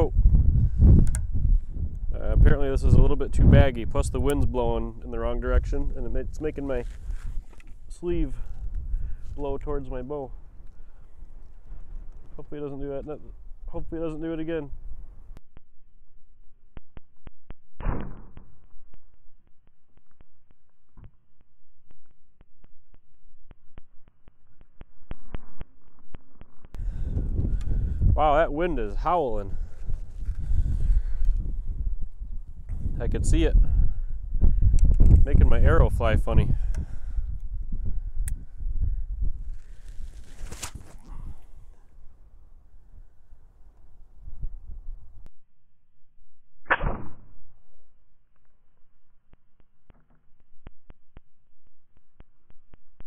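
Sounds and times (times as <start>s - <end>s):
wind rumbling on microphone: 0.0s - 15.4s, 25.0s - 45.3s
bow string snapping: 1.0s - 1.3s, 39.8s - 41.5s.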